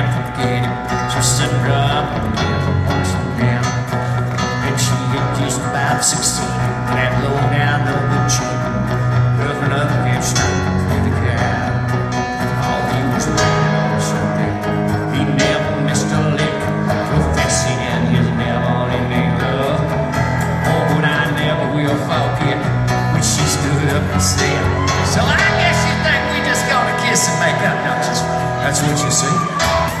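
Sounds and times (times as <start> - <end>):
live country band instrumental: 0.0 - 30.0.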